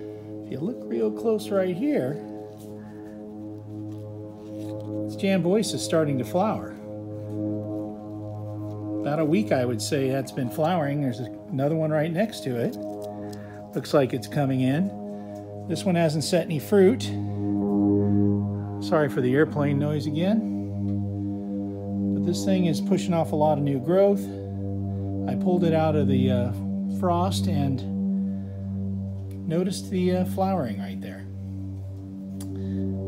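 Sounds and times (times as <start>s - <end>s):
propeller airplane drone: 0.0s - 33.0s.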